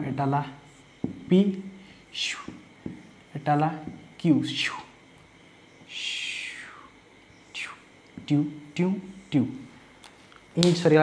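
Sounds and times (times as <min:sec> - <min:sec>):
person speaking: 0:00.0 - 0:05.0, 0:07.5 - 0:09.8, 0:10.4 - 0:11.0
marker tapping: 0:01.0 - 0:01.3, 0:02.4 - 0:03.1, 0:03.8 - 0:04.1.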